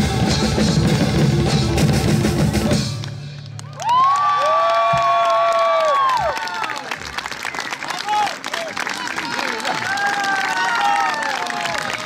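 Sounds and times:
folk band music with drums: 0.0s - 3.5s
audience applause and cheering: 3.0s - 12.0s.

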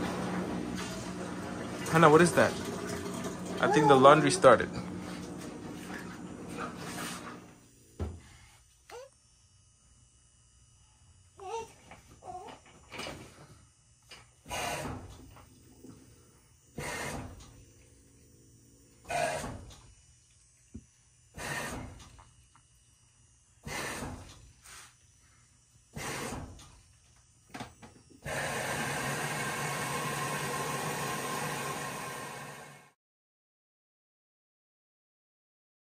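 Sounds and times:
washing machine drum turning: 0.0s - 7.4s.

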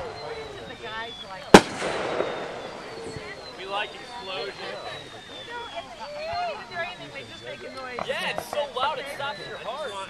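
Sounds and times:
firework bang: 1.5s - 3.4s.

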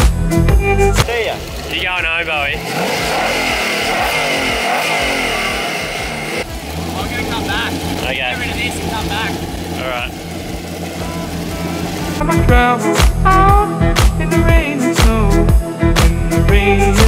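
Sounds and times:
car engine revving and idling: 0.0s - 13.6s.

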